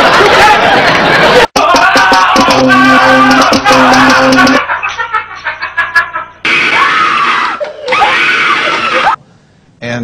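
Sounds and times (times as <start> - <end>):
choppy sound: 1.5 - 4.7
loud scream: 6.5 - 9.2.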